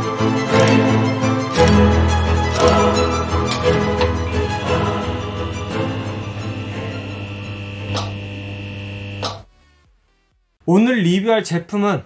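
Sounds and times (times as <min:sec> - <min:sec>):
held music tones: 0:00.6 - 0:09.4
steady buzzing hum: 0:04.0 - 0:09.5.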